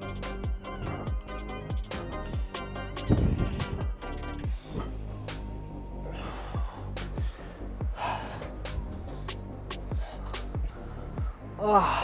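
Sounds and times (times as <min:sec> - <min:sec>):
background music with steady beat: 0:00.0 - 0:12.0
loud thud: 0:03.1 - 0:03.9
man breathing out hard: 0:06.0 - 0:12.0.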